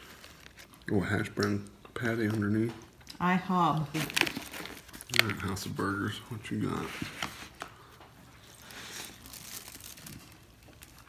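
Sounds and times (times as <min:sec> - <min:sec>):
sharp crinkles: 0:00.0 - 0:03.2, 0:03.8 - 0:06.2, 0:06.8 - 0:11.0
quiet chewing: 0:00.0 - 0:11.0
biting into a burger: 0:07.4 - 0:11.0.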